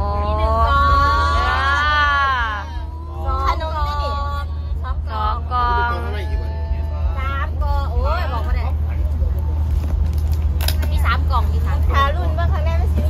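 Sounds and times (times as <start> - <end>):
women talking and exclaiming: 0.0 - 9.0, 10.7 - 13.0
steady low rumble: 0.0 - 13.0
sharp crackle: 9.3 - 11.1.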